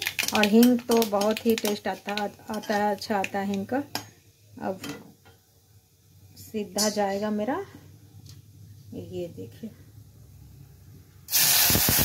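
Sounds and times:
seeds sizzling in hot oil: 0:00.0 - 0:04.8, 0:11.3 - 0:12.0.

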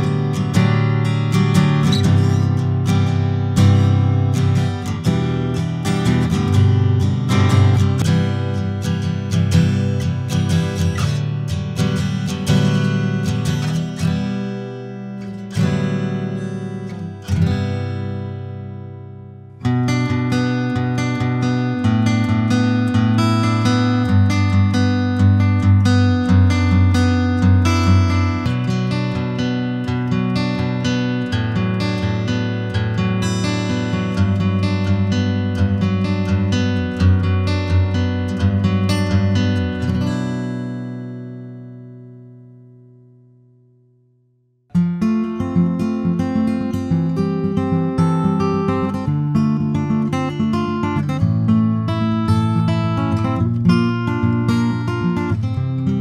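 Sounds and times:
acoustic guitar playing: 0:00.0 - 0:56.0.

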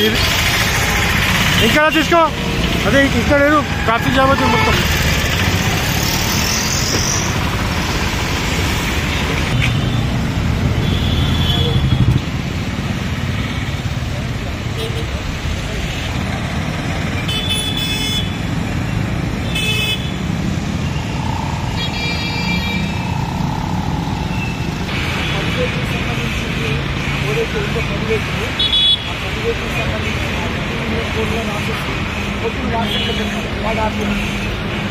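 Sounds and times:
vehicle engines running: 0:00.0 - 0:34.9
horn toots: 0:04.0 - 0:05.2
voices: 0:21.0 - 0:34.9.

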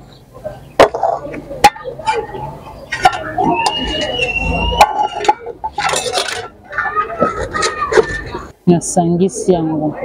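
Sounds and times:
metal spoon scraping a pot: 0:04.2 - 0:06.6.

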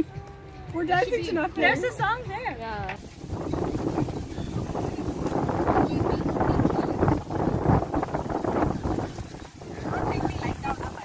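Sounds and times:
muffled voices: 0:00.0 - 0:11.0
wind buffeting microphone: 0:00.6 - 0:11.0.

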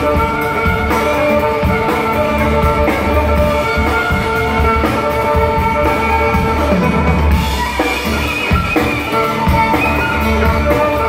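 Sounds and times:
drum kit: 0:00.0 - 0:11.0
fiddle bowing sustained notes: 0:00.0 - 0:11.0.

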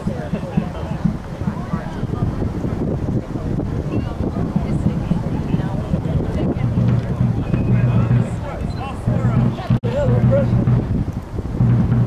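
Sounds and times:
people talking: 0:00.0 - 0:11.0
wind rumbling on microphone: 0:00.0 - 0:12.0.

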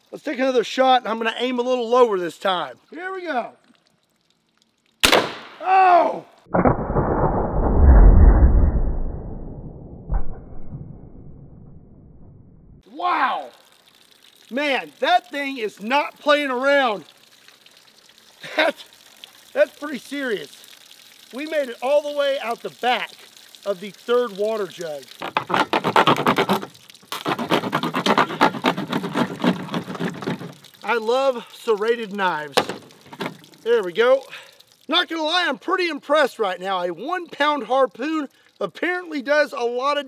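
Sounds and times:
deep drawn-out rumble: 0:06.5 - 0:12.8
knife sawing through plastic: 0:25.3 - 0:30.5.

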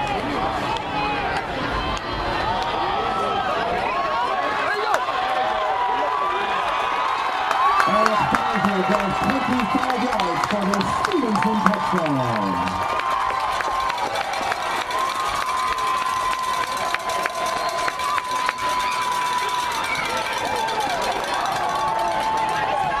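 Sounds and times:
loud voices shouting: 0:00.0 - 0:23.0
stadium crowd cheering: 0:00.0 - 0:23.0
scattered clapping: 0:07.1 - 0:23.0.

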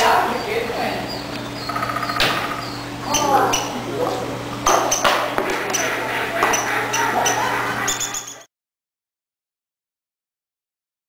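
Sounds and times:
steady low hum: 0:00.0 - 0:08.5.

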